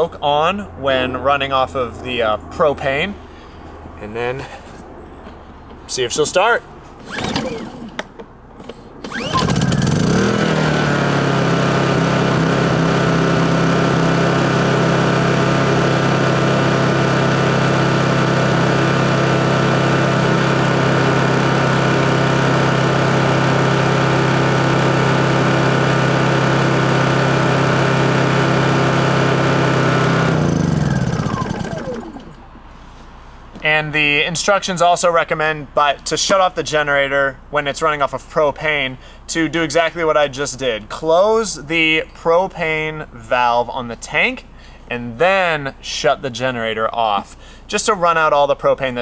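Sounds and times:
generator engine running: 6.6 - 33.1.

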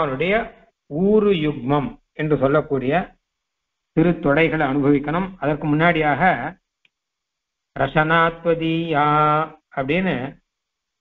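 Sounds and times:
man chanting: 0.0 - 3.1, 4.0 - 6.5, 7.8 - 10.3.

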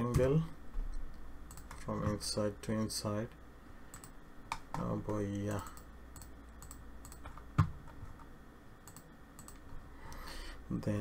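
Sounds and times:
low steady hum: 0.0 - 11.0
keyboard and mouse clicks: 1.5 - 2.2, 3.9 - 8.0, 8.8 - 9.8.

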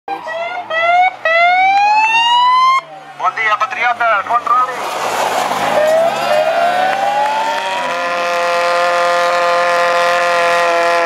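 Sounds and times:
warning siren wailing: 0.1 - 3.0, 5.7 - 11.0
faint car engine: 2.8 - 11.0.

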